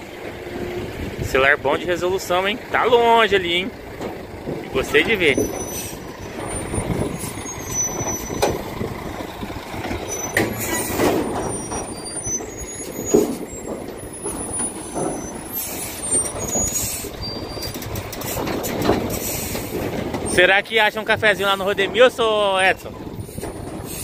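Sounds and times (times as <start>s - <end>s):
trailer knocks and rattles: 0.0s - 24.0s
truck engine running: 0.0s - 24.0s
air brake hisses: 19.1s - 19.8s.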